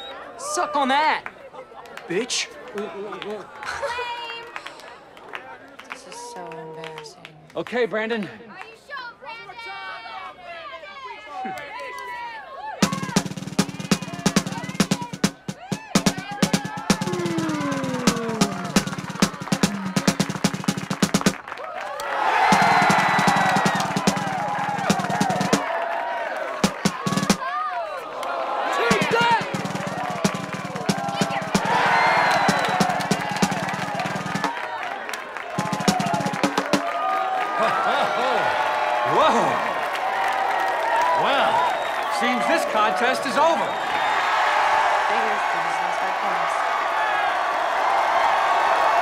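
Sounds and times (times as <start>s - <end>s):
crowd shouting and cheering: 0.0s - 7.1s, 8.7s - 49.0s
marching snare drum rolls: 12.8s - 21.5s, 22.4s - 25.8s, 26.5s - 27.4s, 28.8s - 34.6s, 35.6s - 37.0s.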